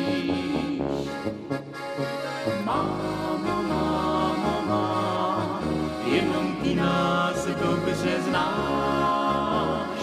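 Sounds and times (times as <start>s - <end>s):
man and woman singing duet: 0.0s - 1.2s, 2.7s - 10.0s.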